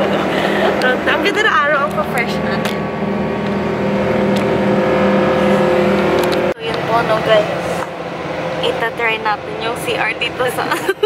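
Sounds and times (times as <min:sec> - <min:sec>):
bus droning inside cabin: 0:00.0 - 0:11.0.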